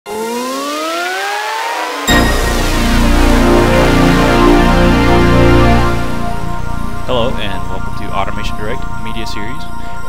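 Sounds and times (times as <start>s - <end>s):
synthesized rising tone with hiss: 0.1s - 8.4s.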